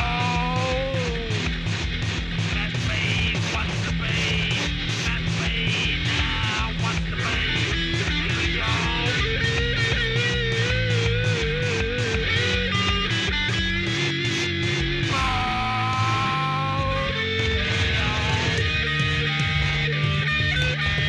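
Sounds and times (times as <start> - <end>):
rock song with electric guitar: 0.0 - 21.0
steady drum beat: 0.0 - 21.0.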